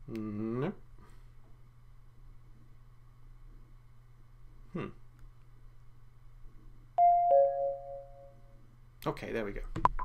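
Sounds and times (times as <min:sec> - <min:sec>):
faint steady hum: 0:00.0 - 0:10.0
two-note descending electronic chime: 0:07.0 - 0:08.4.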